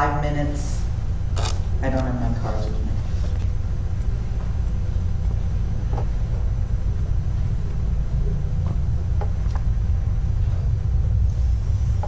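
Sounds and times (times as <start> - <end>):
low rumble and hum: 0.0 - 12.0.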